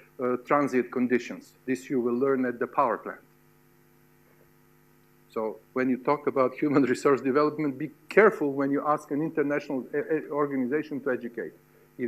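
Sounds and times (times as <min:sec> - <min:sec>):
faint electrical mains hum: 0:00.0 - 0:12.0
person speaking: 0:05.3 - 0:11.6.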